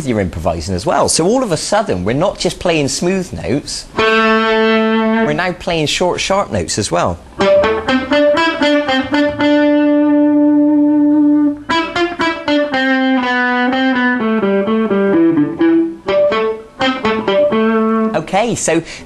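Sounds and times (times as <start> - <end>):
electric guitar lead line: 3.9 - 5.4, 7.2 - 18.2.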